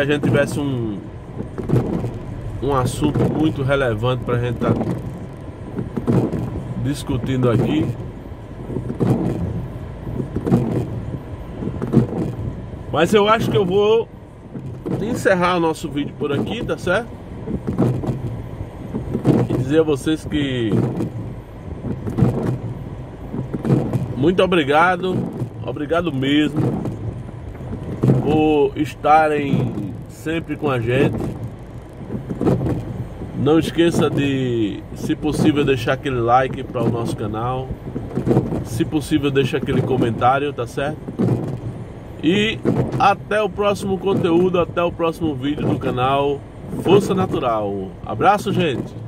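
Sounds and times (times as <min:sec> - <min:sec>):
car cabin rumble: 0:00.0 - 0:49.0
rain on car: 0:00.0 - 0:49.0
windshield wiper sweeping: 0:00.0 - 0:49.0
short knocks: 0:01.4 - 0:11.0, 0:11.6 - 0:13.9, 0:14.5 - 0:28.4, 0:29.3 - 0:41.7, 0:42.3 - 0:44.7.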